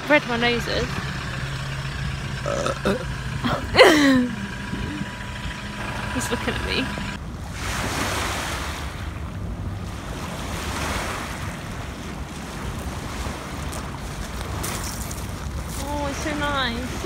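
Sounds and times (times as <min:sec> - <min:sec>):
wind rumbling on microphone: 0:00.0 - 0:17.0
river water washing onto pebbles: 0:12.6 - 0:16.9.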